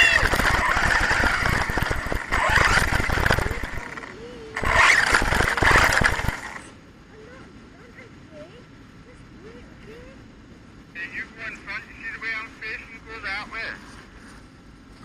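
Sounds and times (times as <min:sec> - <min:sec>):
rc truck motor and tyre noise: 0:00.0 - 0:06.8.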